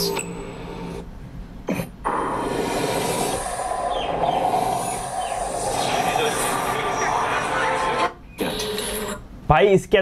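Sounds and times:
loud dense wash of sound: 2.1s - 8.0s.

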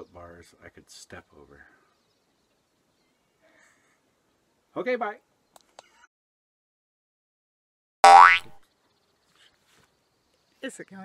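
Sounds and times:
cartoon boing sound effect: 8.0s - 8.6s.

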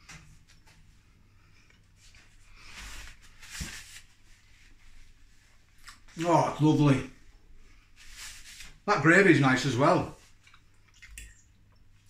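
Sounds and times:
person chewing quietly: 10.2s - 12.0s.

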